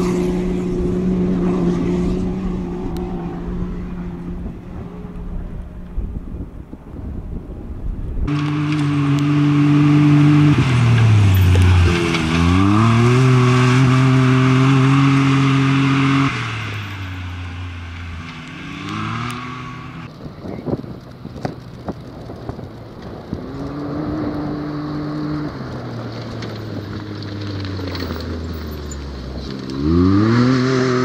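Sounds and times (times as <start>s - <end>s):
engine revving hard: 8.3s - 17.0s, 29.7s - 31.0s.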